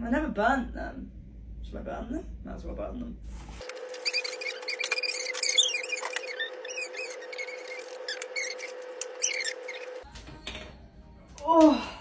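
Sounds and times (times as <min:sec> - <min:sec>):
high-pitched squeaky chirps: 0:03.6 - 0:10.1.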